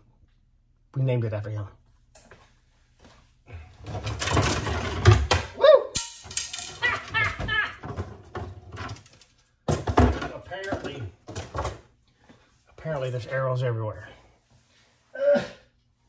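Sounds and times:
arrow shafts clattering: 3.9s - 11.8s.

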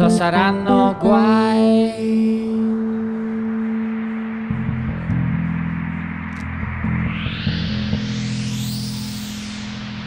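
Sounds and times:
low sustained keyboard tones: 0.0s - 10.0s.

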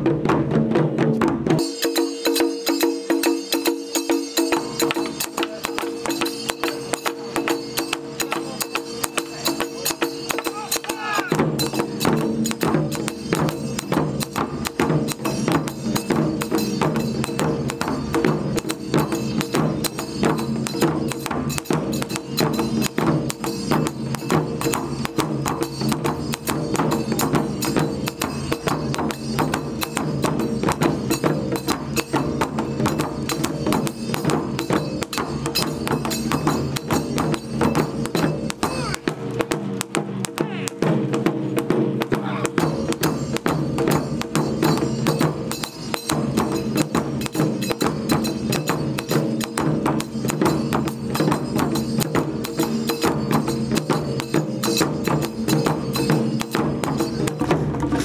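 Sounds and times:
deep heavy drum beats: 0.0s - 1.8s, 4.4s - 51.0s, 55.9s - 58.0s
taiko drum ensemble: 0.0s - 58.0s.

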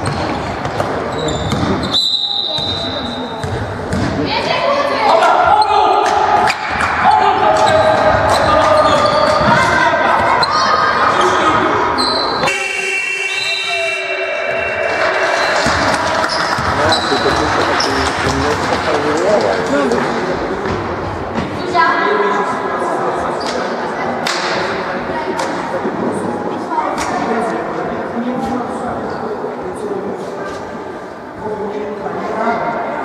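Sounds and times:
players and spectators calling out: 0.0s - 18.7s.

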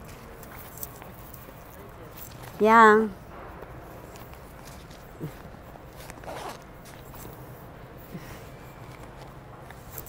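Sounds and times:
outdoor background noise: 0.0s - 10.0s
clothing rustle: 4.0s - 10.0s.

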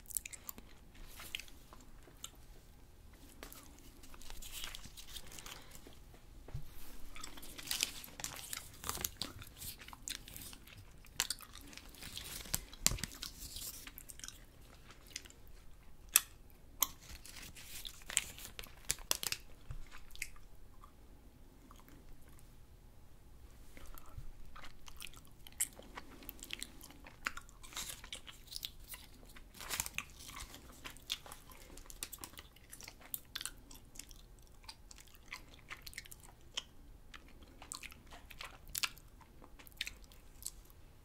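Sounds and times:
wet chewing: 7.0s - 21.0s, 23.8s - 40.7s.

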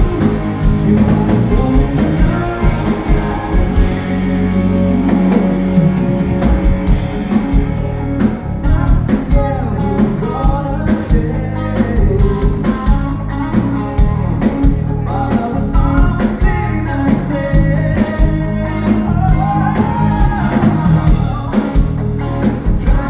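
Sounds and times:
man singing lead vocal: 0.0s - 6.5s, 8.2s - 13.6s, 14.6s - 23.0s
bass guitar: 0.0s - 23.0s
drum kit steady beat: 0.0s - 23.0s
electric guitar: 0.0s - 23.0s.

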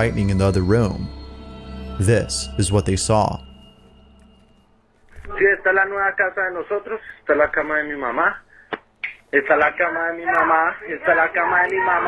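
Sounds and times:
man talking: 0.0s - 1.2s, 1.9s - 3.5s.

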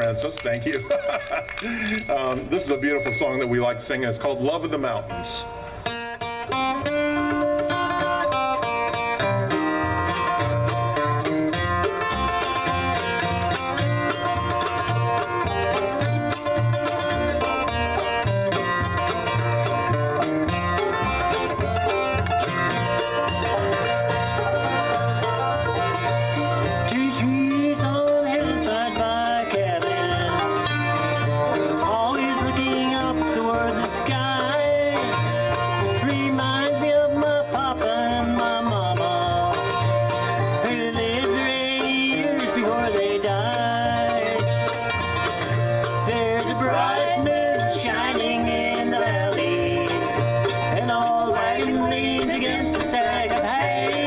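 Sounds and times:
acoustic guitar: 0.0s - 54.0s
banjo: 0.0s - 54.0s
fiddle: 0.0s - 54.0s
mandolin: 0.0s - 54.0s
upright bass: 0.0s - 54.0s.

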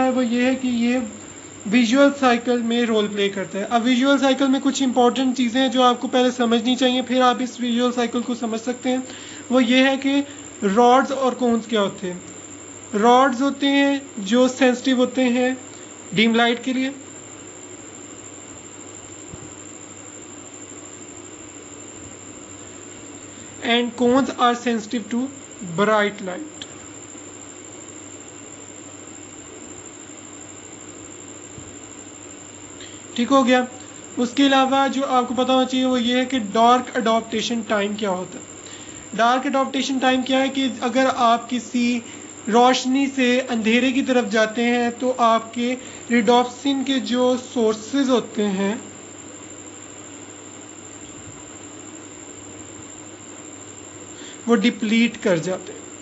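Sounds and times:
steady hum and hiss: 0.0s - 56.0s.

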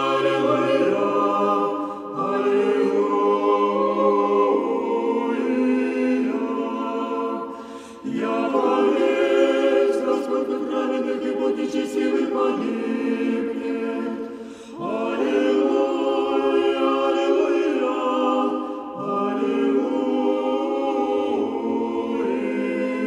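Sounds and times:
choir singing unaccompanied chant: 0.0s - 23.0s.

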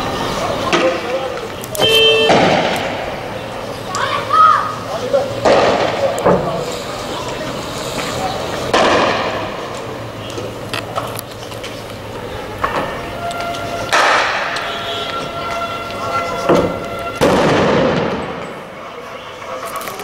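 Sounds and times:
people shouting: 1.8s - 5.1s
tear gas launcher bangs: 1.9s - 3.4s, 5.4s - 6.6s, 8.7s - 9.7s, 16.6s - 18.6s.

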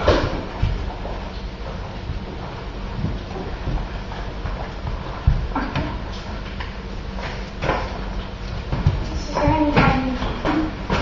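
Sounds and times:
running footsteps on concrete: 0.2s - 9.8s.

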